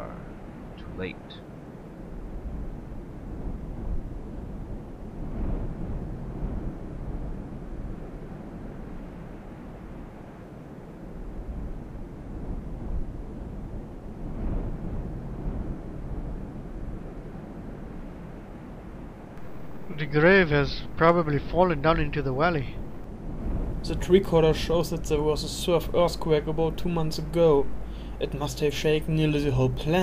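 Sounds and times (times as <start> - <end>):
rumbling wind gusts: 0.0 - 30.0.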